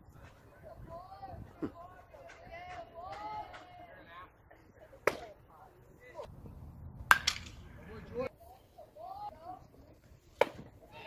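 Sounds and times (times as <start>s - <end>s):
baseball hitting bat or glove: 5.0s - 5.4s, 7.1s - 7.7s, 10.4s - 10.7s.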